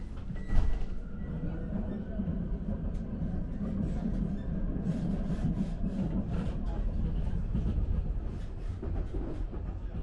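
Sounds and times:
train rumbling on track: 0:00.0 - 0:10.0.

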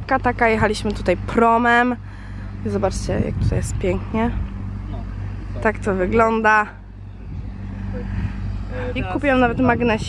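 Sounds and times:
vehicle engine hum: 0:00.0 - 0:10.0.

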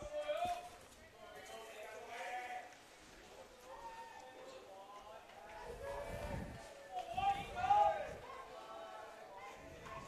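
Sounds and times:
distant shouts of players: 0:05.6 - 0:10.0.

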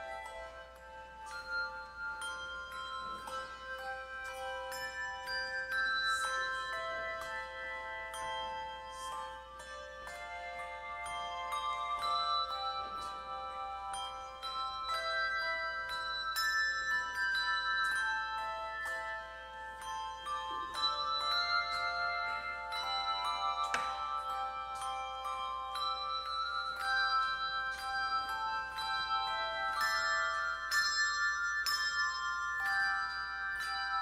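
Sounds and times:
handbell choir playing hymn: 0:00.0 - 0:34.0.

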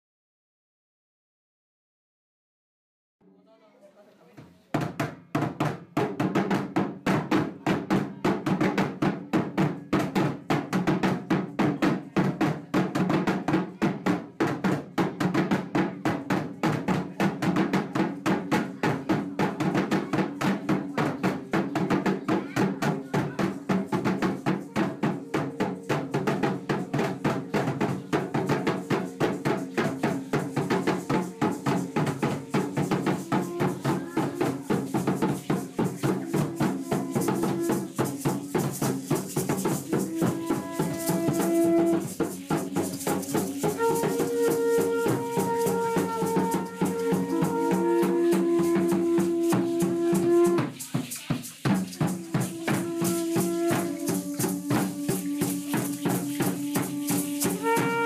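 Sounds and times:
drums beaten in fast rhythm: 0:04.4 - 0:58.0.

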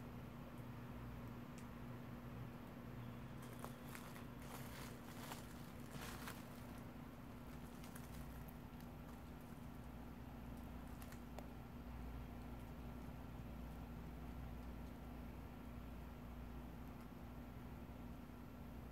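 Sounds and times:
faint steady hum: 0:00.0 - 0:18.9
gravel and dry leaves crackling: 0:03.3 - 0:11.6.

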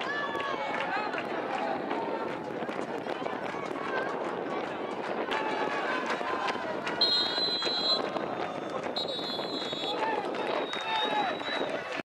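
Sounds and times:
players and spectators shouting: 0:04.9 - 0:11.9
referee's whistle blasts: 0:07.0 - 0:08.1, 0:09.0 - 0:10.0.

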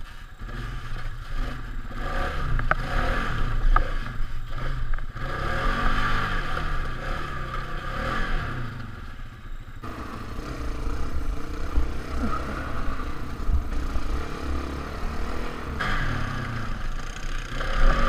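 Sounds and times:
quad engine revving: 0:00.4 - 0:09.1, 0:09.8 - 0:18.0.

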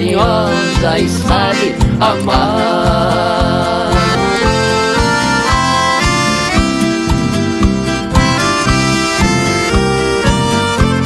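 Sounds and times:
band's steady low beat: 0:00.0 - 0:11.0
piano accordion melody: 0:00.0 - 0:11.0.

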